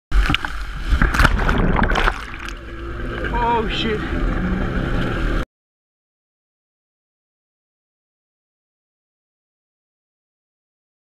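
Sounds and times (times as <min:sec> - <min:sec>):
water splashing on camera: 0:00.1 - 0:03.2
rushing water and spray: 0:00.1 - 0:04.2
jet ski engine rumble: 0:00.1 - 0:05.4.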